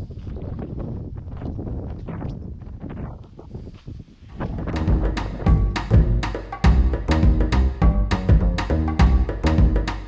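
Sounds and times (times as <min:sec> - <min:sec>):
wind buffeting a microphone: 0:00.0 - 0:06.0.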